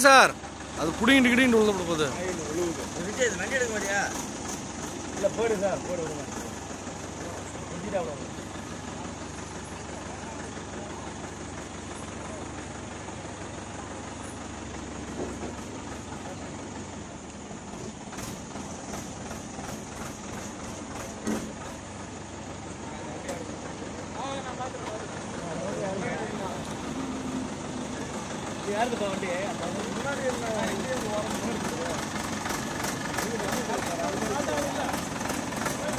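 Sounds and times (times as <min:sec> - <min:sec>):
crane engine running: 0:00.0 - 0:35.9
men calling out: 0:24.0 - 0:32.2.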